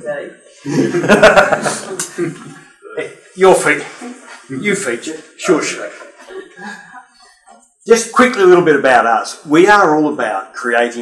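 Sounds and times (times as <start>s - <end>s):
person speaking: 0.0s - 11.0s
chuckling laughter: 0.7s - 1.9s.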